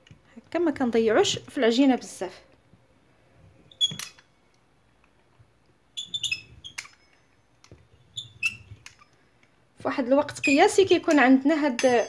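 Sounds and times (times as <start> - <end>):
pizza cutter clicking and squeaking: 6.0 - 7.1, 8.0 - 9.2.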